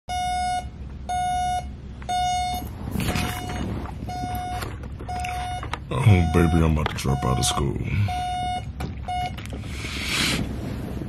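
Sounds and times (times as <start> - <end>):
digital alarm clock beeping: 0.1 - 2.7, 3.4 - 9.4.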